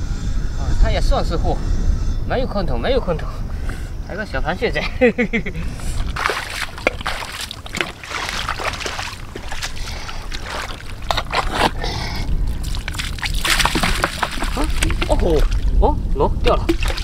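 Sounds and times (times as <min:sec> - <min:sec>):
mud and water sloshing: 0:06.0 - 0:15.8, 0:16.4 - 0:17.0.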